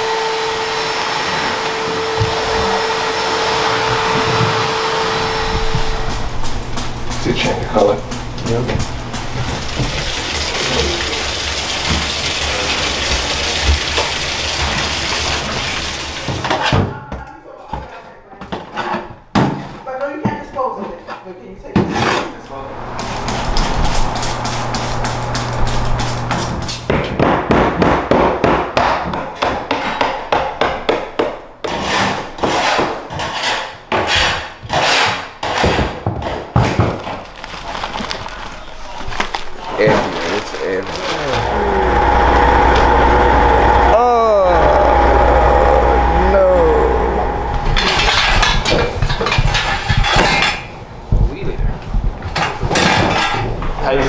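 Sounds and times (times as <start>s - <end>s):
steady low hum: 1.8s - 14.5s, 22.4s - 26.9s, 39.5s - 53.8s
rubbish rustling: 36.3s - 41.6s
voices: 38.5s - 49.0s
knocks and clatter: 47.5s - 53.8s.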